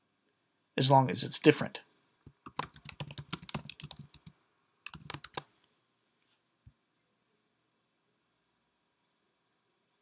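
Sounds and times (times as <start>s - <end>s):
typing on computer keyboard: 2.4s - 5.5s.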